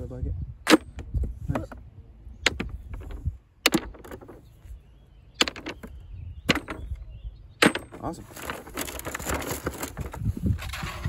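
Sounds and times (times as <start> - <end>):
rocks clacking into bucket: 2.4 - 4.5, 5.4 - 7.0, 7.6 - 11.0.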